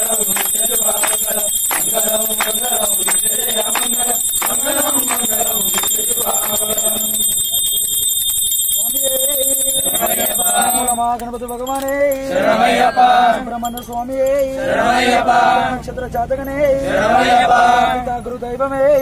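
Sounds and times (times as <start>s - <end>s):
men chanting in unison: 0.0s - 7.2s, 9.6s - 11.1s, 11.7s - 19.0s
brass hand bell ringing: 0.0s - 14.4s.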